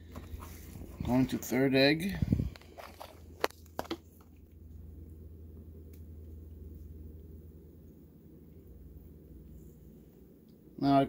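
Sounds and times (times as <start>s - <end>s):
crunchy clicks in perlite: 2.5s - 4.5s.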